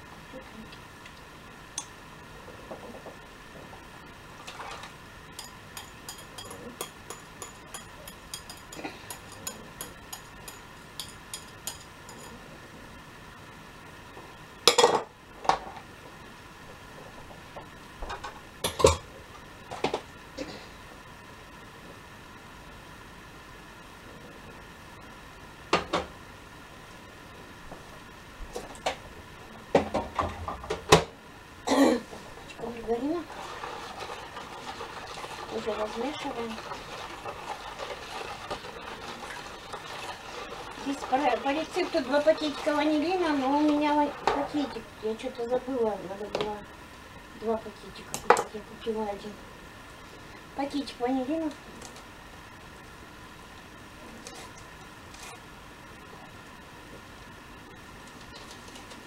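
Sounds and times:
dishes and utensils clattering: 4.4 - 12.4
spoon clinking against bowl: 5.4 - 12.4.

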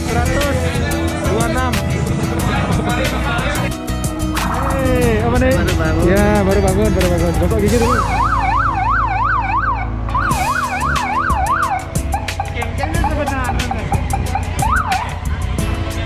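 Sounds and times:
electronic siren yelping: 7.9 - 15.2
siren whoop: 8.0 - 12.3.

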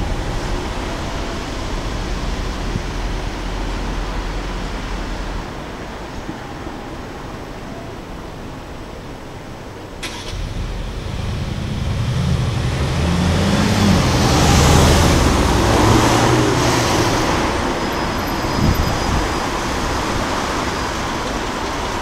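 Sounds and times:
car engine accelerating past: 10.0 - 19.8.

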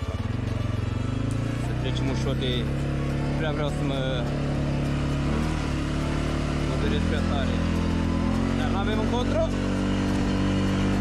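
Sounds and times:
atv engine running under load: 0.0 - 11.0.

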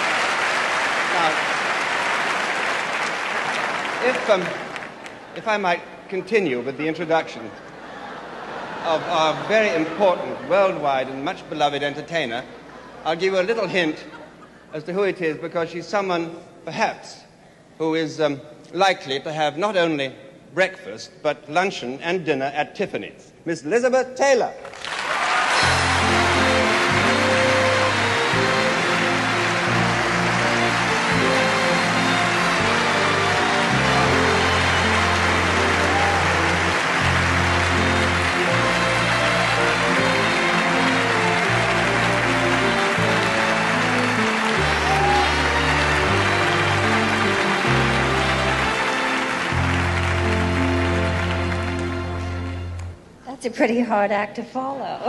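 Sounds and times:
audience applause: 0.0 - 5.6, 24.7 - 52.8
orchestra playing: 0.0 - 6.5, 25.3 - 53.2.

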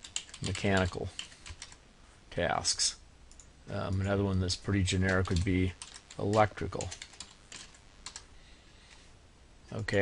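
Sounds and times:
faint keyboard typing: 0.0 - 1.8, 3.3 - 8.3.

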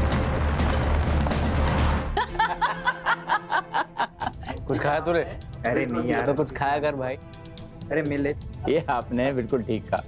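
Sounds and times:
person laughing: 2.1 - 5.0.

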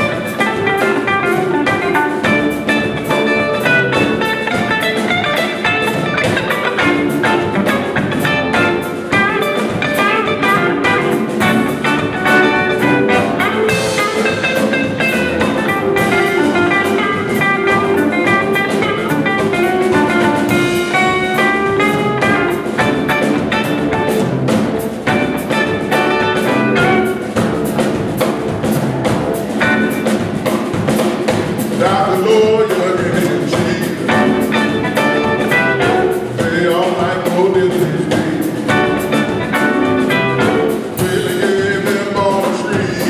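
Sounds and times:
blues band playing: 0.0 - 43.0
lead guitar quick runs: 0.0 - 43.0
steady drums: 0.0 - 43.0.

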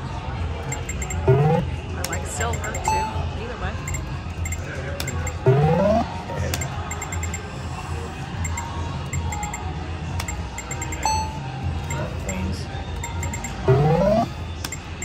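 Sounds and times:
low casino hum: 0.6 - 15.0
short electronic beeps: 0.7 - 1.7, 2.4 - 3.2, 3.8 - 7.5, 8.4 - 9.6, 10.2 - 15.0
rising electronic sweep: 1.3 - 1.6, 5.5 - 6.1, 13.7 - 14.3.

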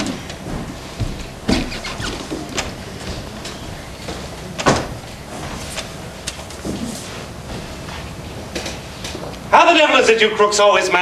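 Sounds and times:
knocks and thuds on a stage: 0.0 - 3.4.

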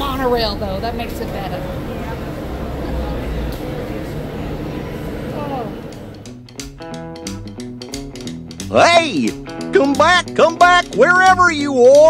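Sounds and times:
faint voices: 0.0 - 6.2
train low rumble: 0.0 - 6.3
guitar music: 1.8 - 12.0.

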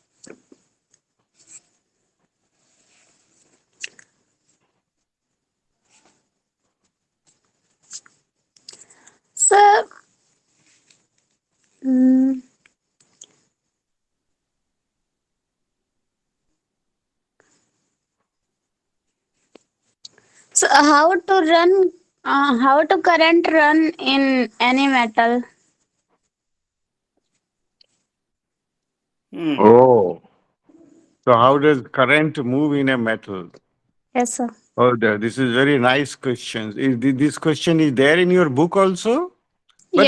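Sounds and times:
faint scratching and rustling: 0.0 - 11.8, 17.4 - 26.5.

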